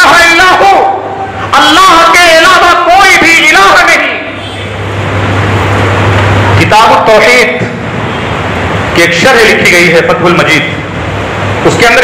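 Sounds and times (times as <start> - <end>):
steady low hum: 0.6 - 12.0.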